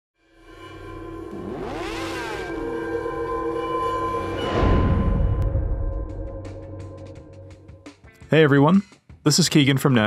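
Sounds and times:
synthesized drone: 0:00.2 - 0:07.7
rising and falling pitch sweeps: 0:00.5 - 0:07.0.

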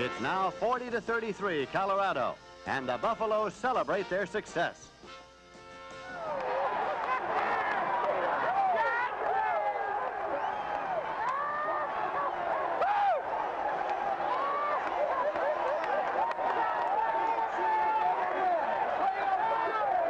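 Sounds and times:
stadium crowd cheering: 0:05.8 - 0:20.0.

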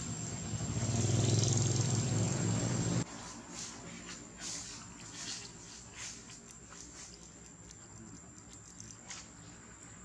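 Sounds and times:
vehicle engine running: 0:00.0 - 0:03.0.

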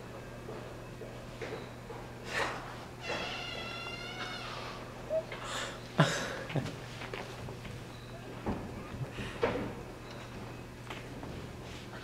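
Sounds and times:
door creaking open: 0:03.0 - 0:04.9.

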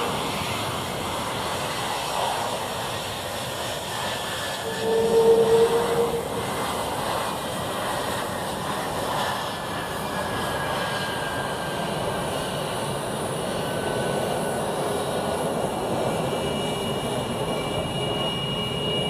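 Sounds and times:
jet engines rushing with whine: 0:00.0 - 0:19.0.

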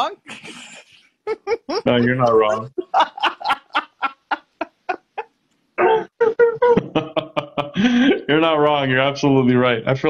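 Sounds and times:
woman laughing: 0:00.3 - 0:07.6.

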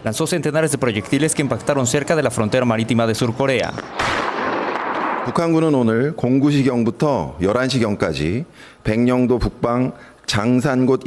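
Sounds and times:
heavy gun firing: 0:03.9 - 0:05.7.

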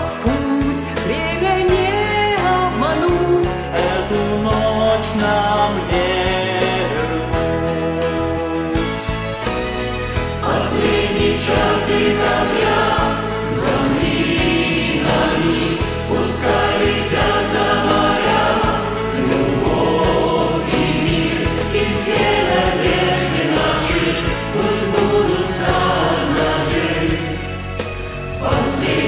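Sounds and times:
mixed choir singing pop song: 0:00.0 - 0:08.4, 0:10.2 - 0:29.0
instrumental backing: 0:00.0 - 0:29.0.

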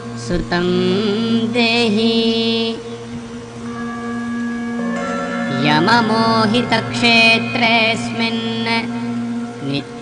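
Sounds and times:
sustained drone tones: 0:00.0 - 0:10.0.

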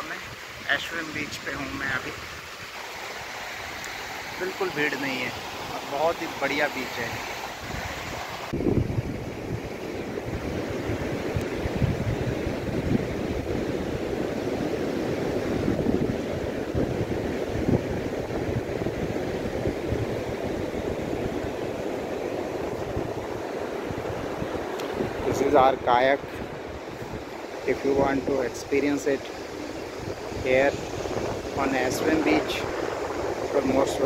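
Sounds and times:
ocean surf rushing: 0:00.0 - 0:34.0
wind buffeting microphone: 0:06.9 - 0:34.0.

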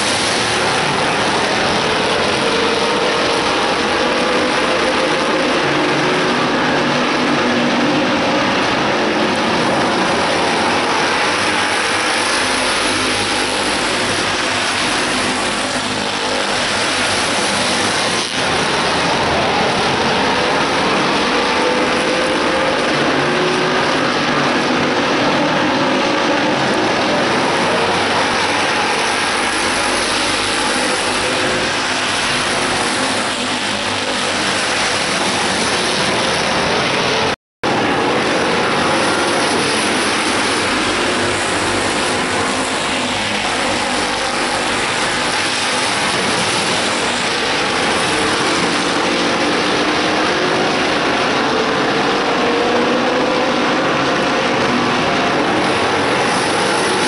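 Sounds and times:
racing car engines: 0:00.0 - 0:57.0.

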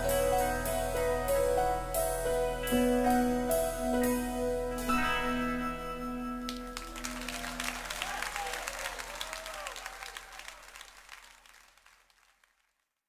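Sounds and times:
sustained keyboard chord: 0:00.0 - 0:07.8
audience applauding and cheering: 0:06.5 - 0:12.7.

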